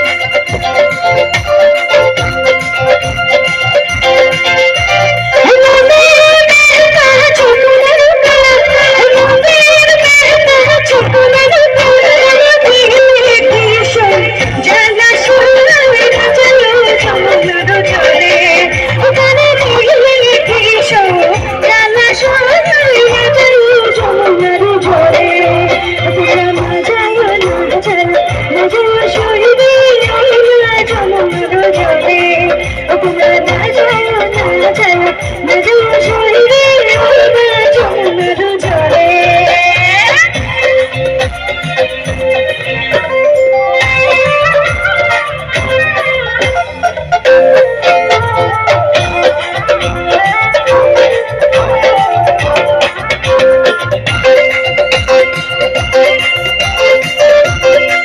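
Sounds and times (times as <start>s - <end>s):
keyboards and electric guitar: 0.0s - 58.0s
live band playing: 0.0s - 58.0s
woman singing into a microphone: 0.0s - 58.0s.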